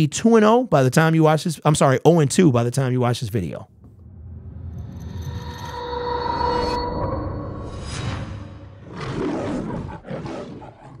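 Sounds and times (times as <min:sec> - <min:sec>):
lion roaring: 0:08.8 - 0:11.0.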